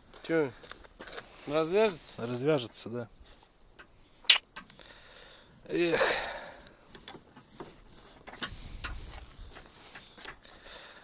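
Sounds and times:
person sighing: 4.8s - 6.6s
rope clicks and rustles: 6.6s - 10.4s.

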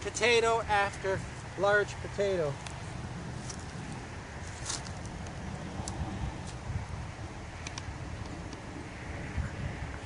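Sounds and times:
hands rustling in mulch: 2.7s - 6.6s.

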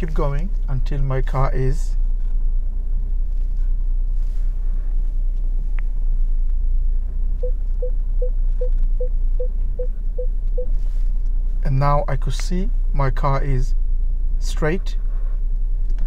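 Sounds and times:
car engine rumble: 0.0s - 16.0s
parking sensor beeping: 7.4s - 10.8s.

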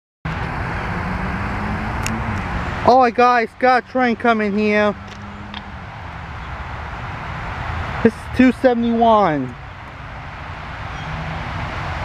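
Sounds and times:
outdoor background rumble and hiss: 0.7s - 12.0s.

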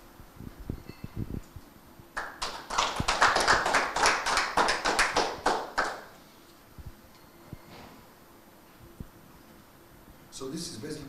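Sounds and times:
audience applauding: 2.2s - 6.1s.

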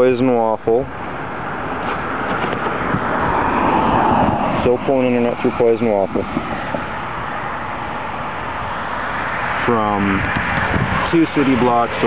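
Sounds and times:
car tyre and engine noise: 0.0s - 12.0s.

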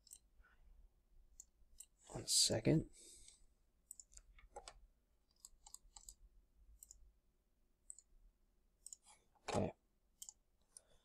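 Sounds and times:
computer mouse clicks: 0.0s - 0.3s, 3.8s - 6.2s, 6.8s - 7.1s, 7.8s - 8.1s, 8.8s - 9.2s, 10.2s - 11.0s.

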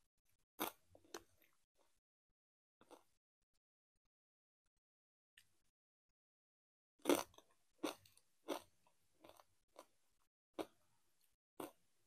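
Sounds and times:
chips being chewed: 0.6s - 1.9s, 7.0s - 10.0s.

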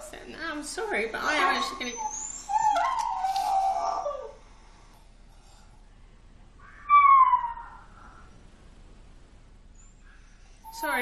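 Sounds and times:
dog whining: 0.9s - 4.4s, 6.6s - 8.3s
dog howling: 1.2s - 4.4s, 6.6s - 8.3s.

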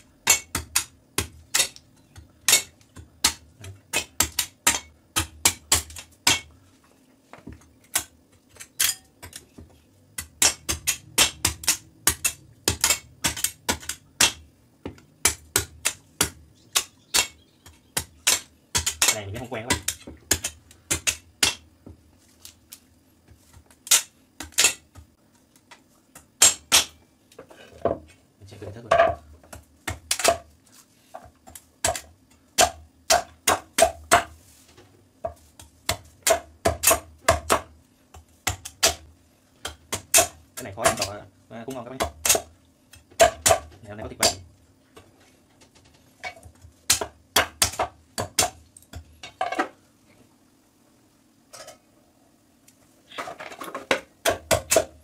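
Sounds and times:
knife chopping coconut: 2.4s - 6.5s, 10.2s - 21.6s, 26.4s - 27.0s, 31.4s - 34.4s, 35.3s - 44.4s, 46.9s - 49.0s, 54.2s - 55.0s.

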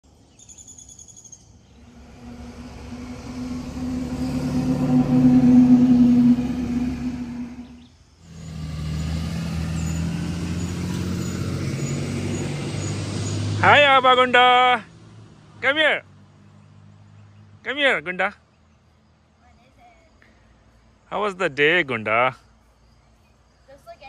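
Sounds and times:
bird chirps: 0.2s - 8.0s
bus engine driving past: 1.6s - 17.6s.

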